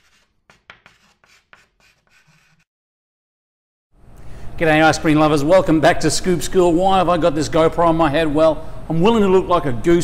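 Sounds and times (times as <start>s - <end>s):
chalk scratching on blackboard: 0.0s - 2.7s.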